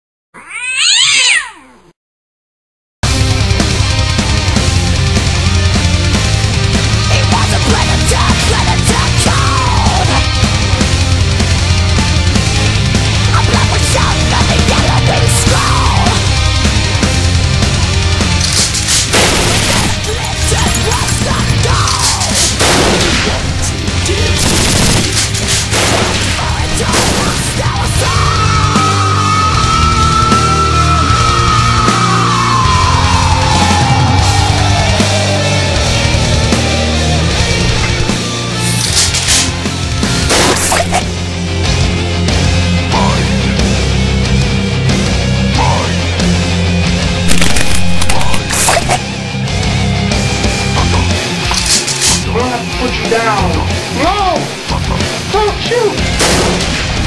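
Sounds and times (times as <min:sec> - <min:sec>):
cat meowing: 0:00.4 - 0:02.0
loud music: 0:03.0 - 0:57.0
gunfire sound effects: 0:19.1 - 0:20.0, 0:22.5 - 0:23.5, 0:24.3 - 0:27.5, 0:40.3 - 0:40.9, 0:47.3 - 0:48.9, 0:56.2 - 0:56.9.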